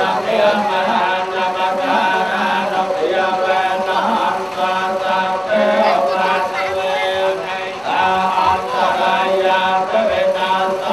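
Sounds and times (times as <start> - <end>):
men chanting in unison: 0.0 - 10.9.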